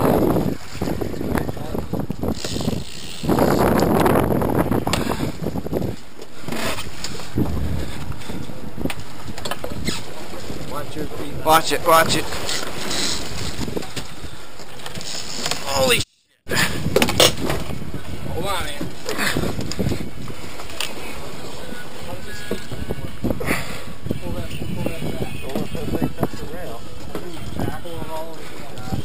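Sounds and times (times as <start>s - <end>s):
water against boat side: 0.0s - 29.0s
wind: 0.0s - 29.0s.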